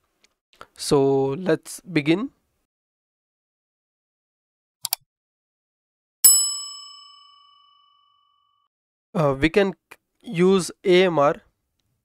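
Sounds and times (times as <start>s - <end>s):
notification bell ding: 6.2s - 8.2s.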